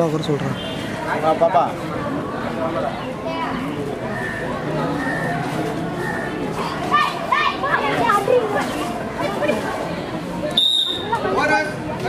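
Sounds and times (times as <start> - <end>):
women and girls shouting: 6.7 - 8.6.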